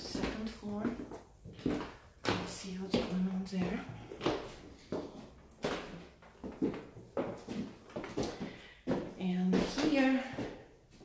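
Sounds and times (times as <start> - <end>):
footsteps on wooden stairs: 0.0 - 11.0.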